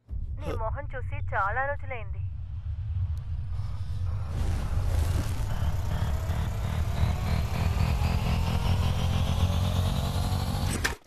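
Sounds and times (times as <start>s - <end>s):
vehicle engine rumble with whine: 0.0s - 11.0s.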